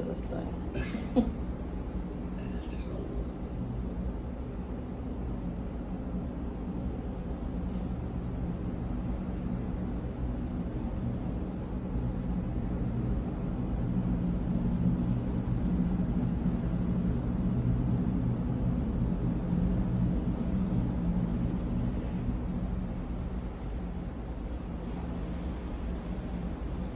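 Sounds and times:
ship machinery rumble and hum: 0:00.0 - 0:26.9.

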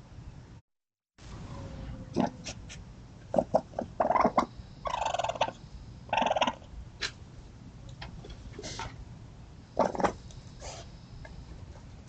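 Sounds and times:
buzzy trilling raccoon calls: 0:02.1 - 0:07.2, 0:09.8 - 0:11.0
raccoon kits chirping: 0:03.3 - 0:07.2.

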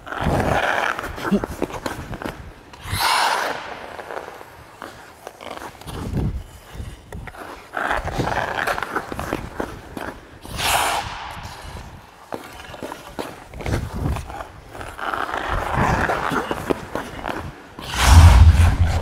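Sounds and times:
skate blades scraping ice: 0:00.0 - 0:18.0.

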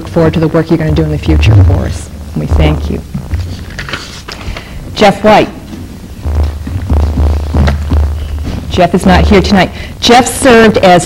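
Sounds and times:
loud steady low hum: 0:00.0 - 0:11.0.

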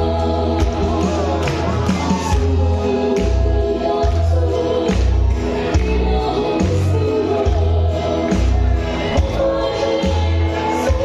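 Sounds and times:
woman singing into a microphone: 0:00.0 - 0:11.0.

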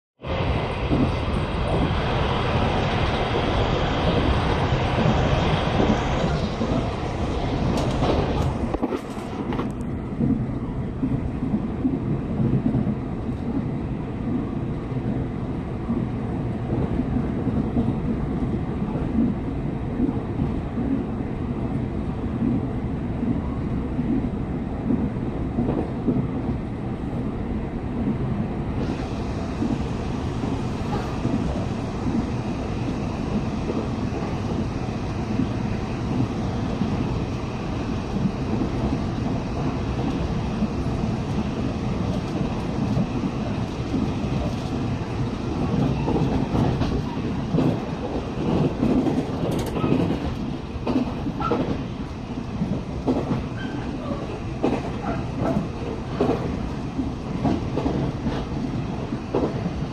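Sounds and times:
train wheels rumbling on rail: 0:00.2 - 0:59.9
clatter of clicks: 0:48.6 - 0:51.8.

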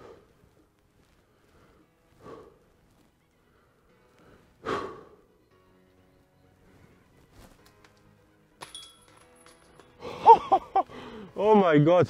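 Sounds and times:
breathy exhalations: 0:00.0 - 0:00.4, 0:01.3 - 0:02.7, 0:03.4 - 0:05.4, 0:10.9 - 0:11.4
faint background music: 0:00.0 - 0:12.0.

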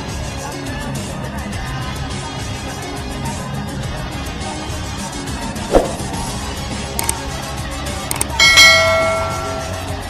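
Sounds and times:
background music: 0:00.0 - 0:10.0
short thump: 0:05.7 - 0:06.3
sharp clicks: 0:08.1 - 0:08.4
small bell ringing: 0:08.1 - 0:10.0.

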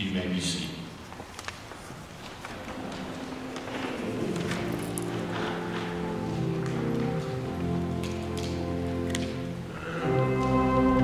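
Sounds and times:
church organ chords: 0:03.8 - 0:11.0.

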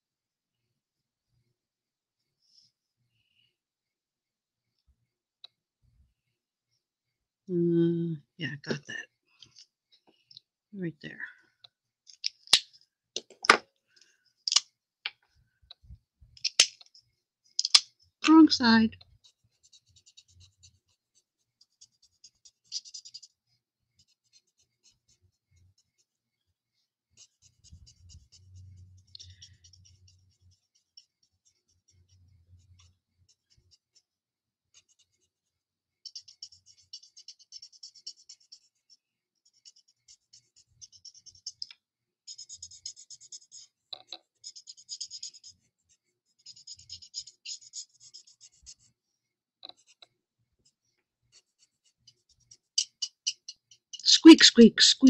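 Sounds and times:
marker scratching on cardstock: 0:17.6 - 0:26.2, 0:27.1 - 0:49.0, 0:49.7 - 0:55.0.

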